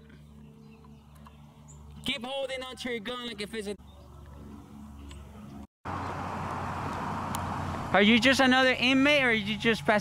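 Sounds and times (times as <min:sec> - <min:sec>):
tyre road noise: 0:04.0 - 0:10.0
van driving at low speed: 0:05.5 - 0:09.7.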